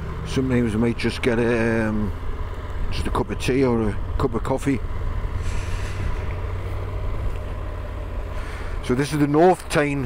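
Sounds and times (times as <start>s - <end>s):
motorcycle engine droning: 0.0s - 10.0s.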